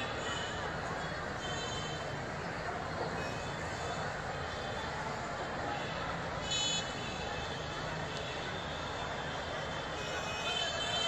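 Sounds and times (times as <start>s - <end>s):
city traffic: 0.0s - 11.0s.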